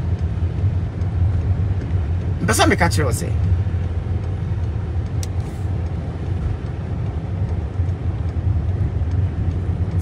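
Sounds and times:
car driving rumble: 0:00.0 - 0:10.0.

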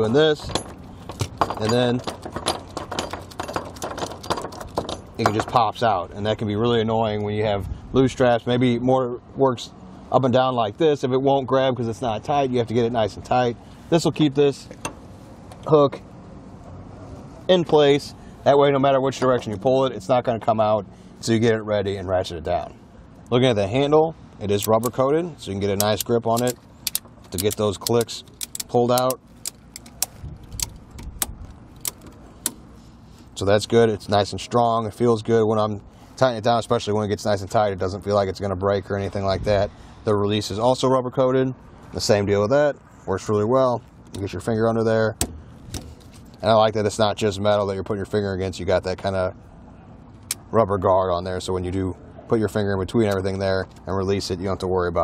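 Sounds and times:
metal hook clinking on steel ring: 0:00.4 - 0:05.7
ratchet strap clicking: 0:25.8 - 0:32.6.

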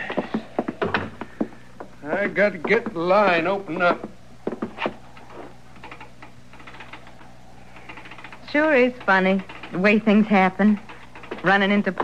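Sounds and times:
steady low hum: 0:00.0 - 0:12.0
telegraph key clicking: 0:05.8 - 0:12.0.

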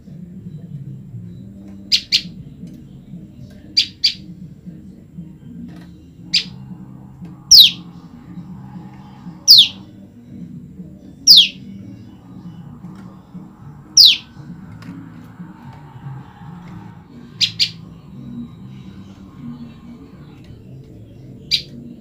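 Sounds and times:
songbird chirping: 0:00.0 - 0:22.0
bird calls sweeping downward: 0:07.5 - 0:07.9, 0:09.4 - 0:09.8, 0:11.3 - 0:11.6, 0:13.9 - 0:14.6, 0:15.8 - 0:18.4.

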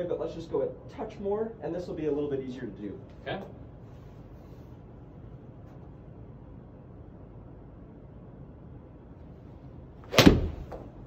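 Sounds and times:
golf club striking ball: 0:10.0 - 0:10.8.

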